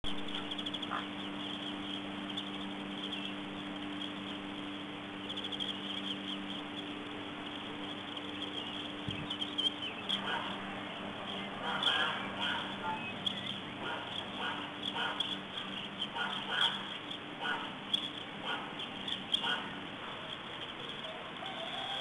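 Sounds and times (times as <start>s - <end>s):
low electrical hum: 0.0s - 22.0s
faint high chirping: 0.1s - 22.0s.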